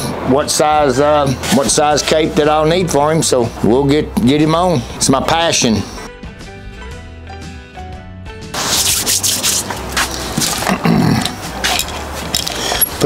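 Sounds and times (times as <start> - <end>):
quiet background music: 0.2 - 13.0
rustling and scraping handling noise: 8.6 - 13.0.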